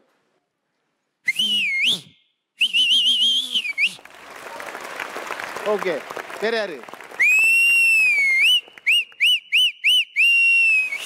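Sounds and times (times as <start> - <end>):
loud two-finger whistle: 1.3 - 4.0, 7.2 - 11.0.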